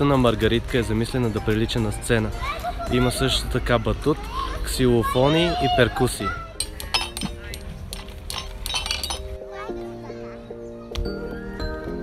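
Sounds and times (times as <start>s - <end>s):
background music with steady beat: 6.2s - 9.9s
mallet striking metal xylophone bars: 6.6s - 9.4s.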